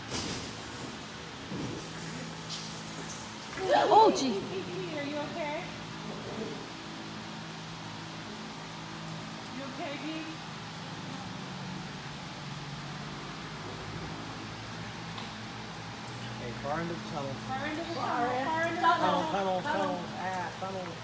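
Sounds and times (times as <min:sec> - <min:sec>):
fan humming: 0:00.0 - 0:21.0.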